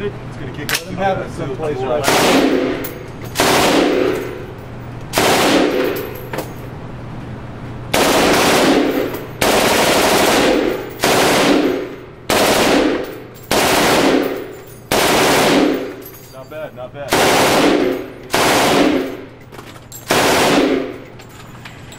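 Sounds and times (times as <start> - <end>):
automatic rifle bursts: 8.0 - 16.0, 17.1 - 19.3, 20.0 - 21.1.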